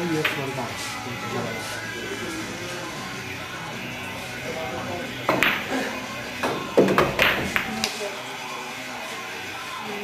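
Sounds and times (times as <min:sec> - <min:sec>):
background music: 0:00.0 - 0:10.0
cue striking ball: 0:05.2 - 0:05.8, 0:06.4 - 0:07.9
billiard balls clicking: 0:05.3 - 0:05.7, 0:06.4 - 0:08.0.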